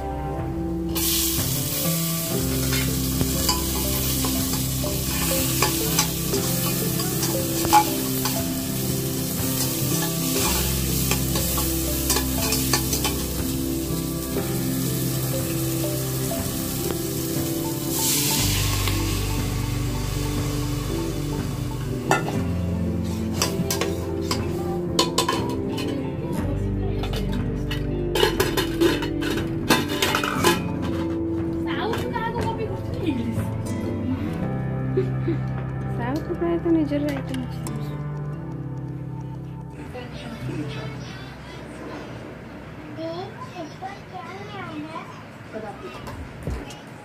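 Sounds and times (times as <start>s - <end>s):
food sizzling in hot oil: 0.9s - 25.9s.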